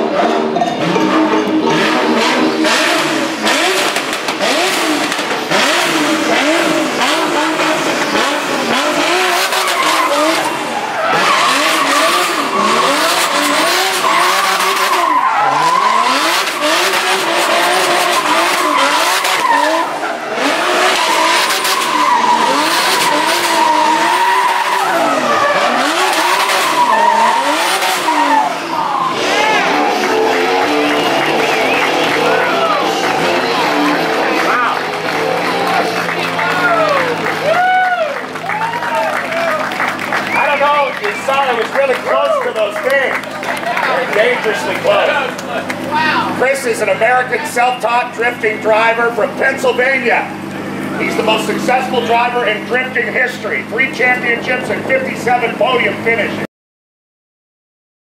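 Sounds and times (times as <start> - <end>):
tyres squealing: 0.0 - 37.6
car engine revving: 0.0 - 56.5.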